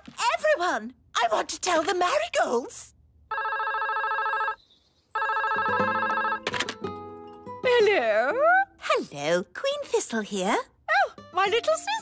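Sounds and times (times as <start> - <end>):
cartoon telephone ringing: 3.3 - 4.6, 5.2 - 6.8.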